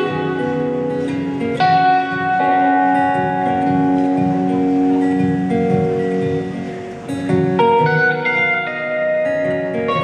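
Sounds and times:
acoustic guitar: 0.0s - 10.0s
electric guitar: 0.0s - 10.0s.

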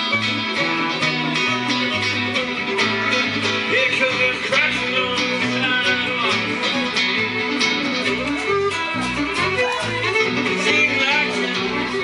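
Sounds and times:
acoustic guitar strumming: 0.0s - 12.0s
bass notes: 0.0s - 12.0s
fiddle playing sliding melody: 0.0s - 12.0s.

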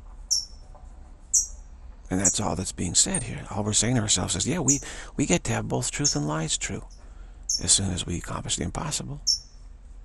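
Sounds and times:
faint low hum: 0.0s - 10.0s
small bird chirping: 0.2s - 0.7s, 1.3s - 3.4s, 4.4s - 5.0s, 5.9s - 7.9s, 9.2s - 9.6s.

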